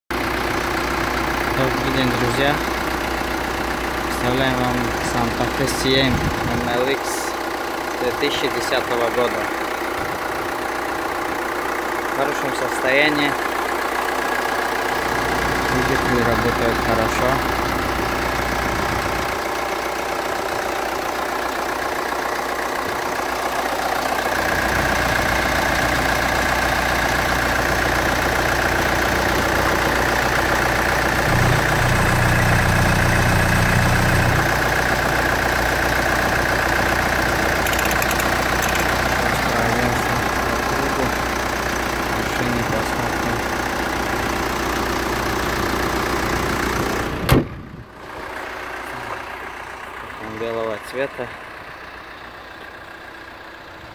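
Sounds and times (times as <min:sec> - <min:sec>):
diesel engine idling: 0:00.1 - 0:53.9
car hood slamming shut: 0:47.2 - 0:47.6.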